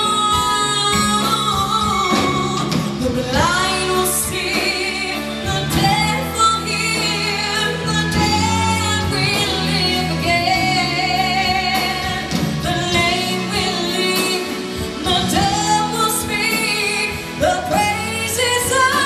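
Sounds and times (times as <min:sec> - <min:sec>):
live band with drums: 0:00.0 - 0:19.0
woman singing into microphone: 0:00.0 - 0:19.0.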